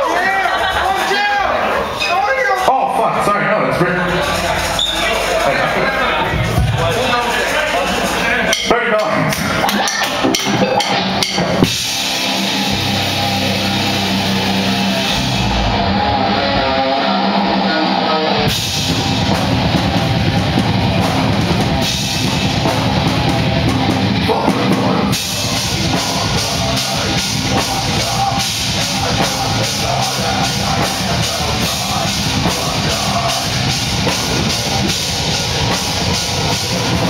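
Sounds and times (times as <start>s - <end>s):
heavy rock band playing: 0.0s - 37.0s.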